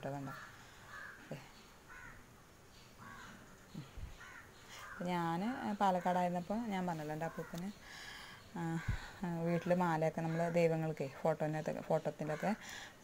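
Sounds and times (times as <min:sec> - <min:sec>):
woman speaking: 0:00.0 - 0:00.5, 0:05.0 - 0:07.8, 0:08.5 - 0:12.7
crows cawing faintly: 0:00.2 - 0:02.3, 0:03.0 - 0:11.1, 0:12.2 - 0:12.9.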